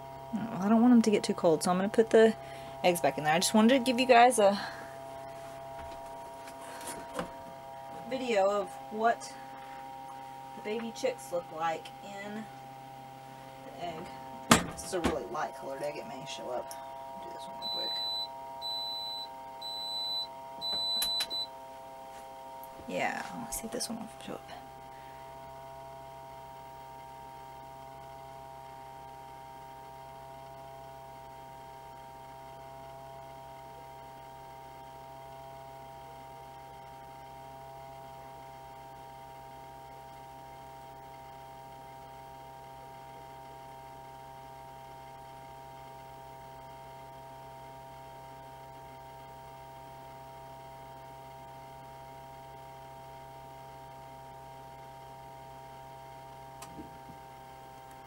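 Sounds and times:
steady whining tones: 0:00.0 - 0:26.2
electrical motor hum: 0:00.0 - 0:58.0.

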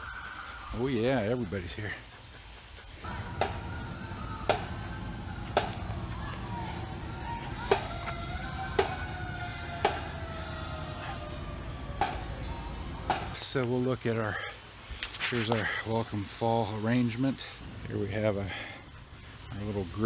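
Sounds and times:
siren winding down: 0:03.1 - 0:13.3.

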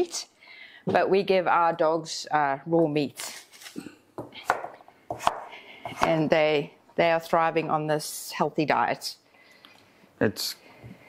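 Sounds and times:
knife chopping on wooden board: 0:04.2 - 0:06.3.

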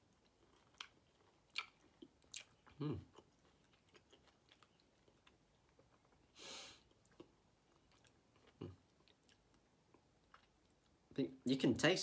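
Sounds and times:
person chewing citrus: 0:00.0 - 0:11.0.

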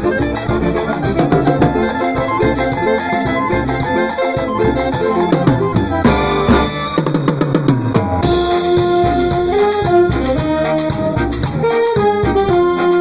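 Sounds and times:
brass band playing: 0:00.0 - 0:13.0
drum kit: 0:00.0 - 0:13.0
quick drum fill: 0:00.0 - 0:13.0.

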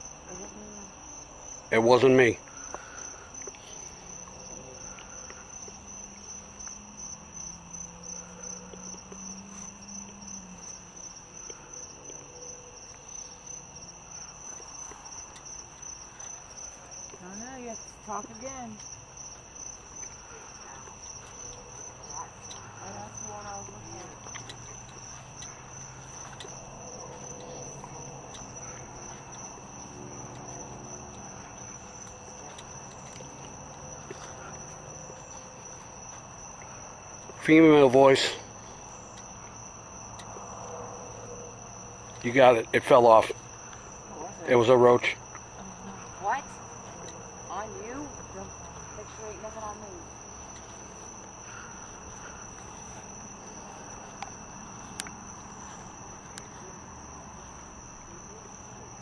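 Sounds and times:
crickets trilling: 0:00.0 - 0:59.0.

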